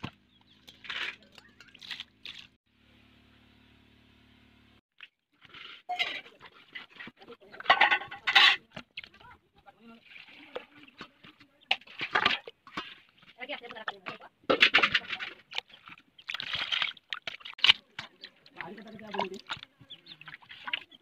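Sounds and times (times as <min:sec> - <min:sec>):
water splashing in a pot: 0:05.0 - 0:21.0.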